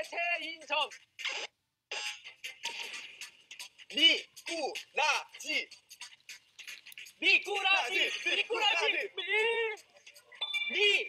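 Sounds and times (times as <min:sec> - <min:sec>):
alarm bell ringing: 0:10.4 - 0:11.0.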